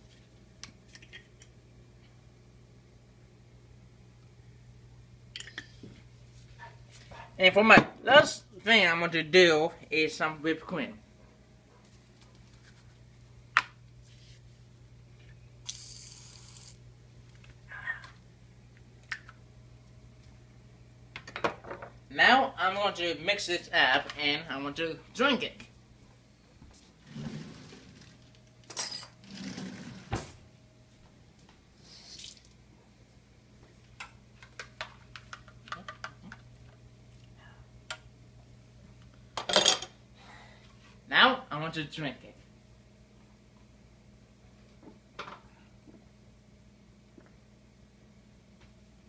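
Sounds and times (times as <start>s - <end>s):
low steady hum: 0.0s - 49.0s
whipped cream can hissing: 15.7s - 16.8s.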